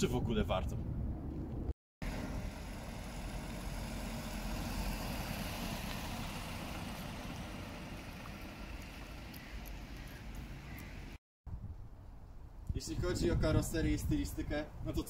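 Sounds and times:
car engine: 2.0 - 11.2
tyres on slushy street: 2.0 - 11.2.

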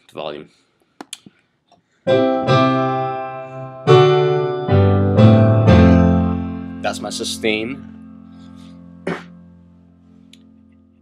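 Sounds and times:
piano chords and bass notes: 2.1 - 11.0.

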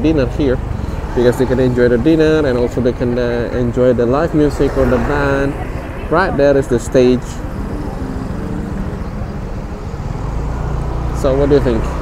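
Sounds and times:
cars passing: 0.0 - 12.0
motorbike passing: 0.0 - 12.0.

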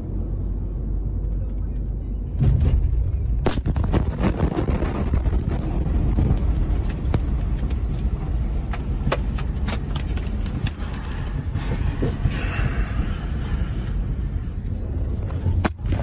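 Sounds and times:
heavy low rumble: 0.0 - 16.0.

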